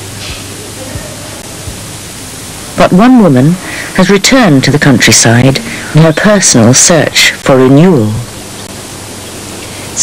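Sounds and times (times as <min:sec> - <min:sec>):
steady hiss: 0:00.0 - 0:10.0
person speaking: 0:02.8 - 0:08.4.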